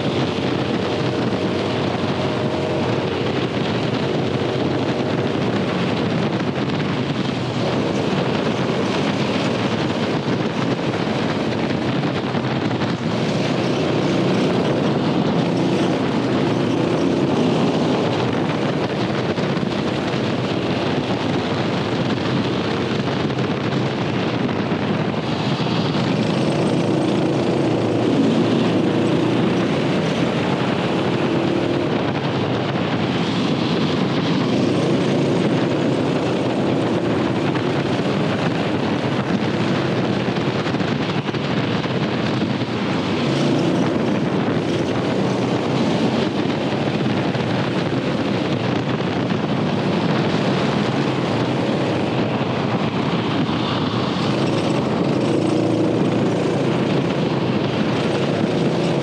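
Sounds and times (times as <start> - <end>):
kart engine at speed: 0.0 - 59.0
wind noise on microphone: 0.0 - 59.0.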